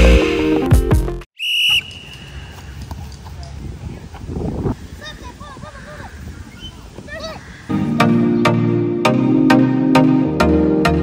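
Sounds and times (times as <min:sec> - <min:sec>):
faint outdoor background: 0:01.3 - 0:11.0
high-pitched whistle blast: 0:01.4 - 0:02.5
electronic background music: 0:07.7 - 0:11.0.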